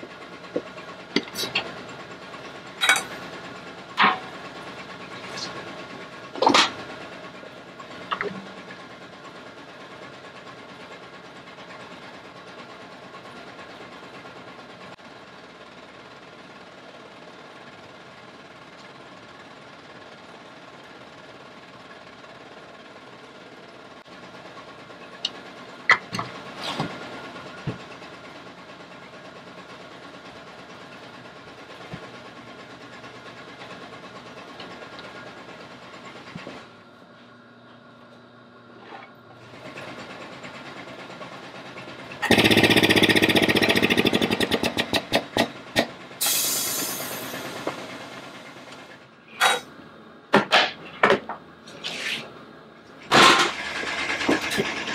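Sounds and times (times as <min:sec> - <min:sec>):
workshop machinery humming: 0:00.0 - 0:54.9.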